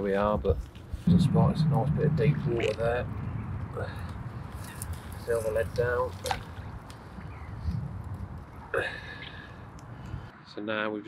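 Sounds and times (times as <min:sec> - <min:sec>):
steady low rumble: 0:01.0 - 0:08.6.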